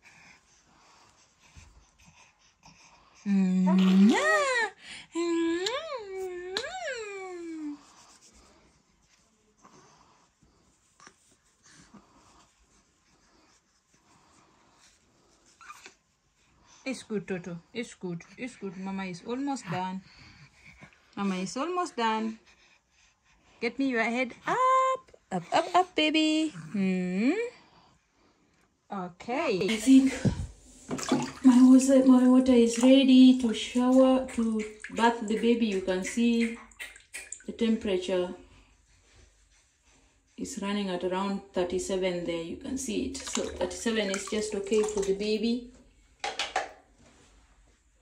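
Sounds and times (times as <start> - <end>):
water sloshing in a bathtub: 3.7 - 4.6, 29.3 - 47.0
handling rustles and taps: 46.2 - 47.1.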